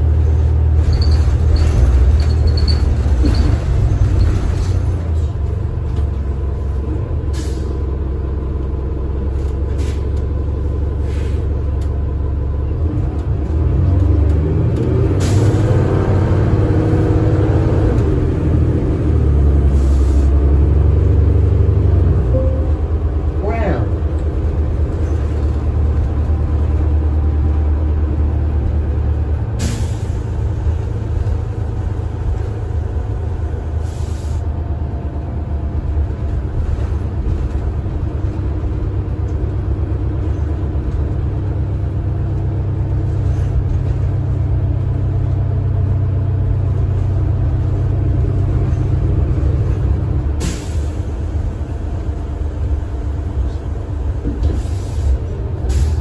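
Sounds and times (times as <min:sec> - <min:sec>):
bus engine drone: 0:00.0 - 0:56.0
short air hisses: 0:33.8 - 0:34.4, 0:54.6 - 0:56.0.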